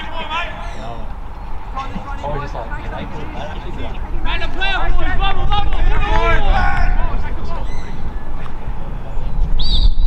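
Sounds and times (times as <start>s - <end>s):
men calling out: 0.0s - 8.9s
steady low rumble: 0.4s - 10.0s.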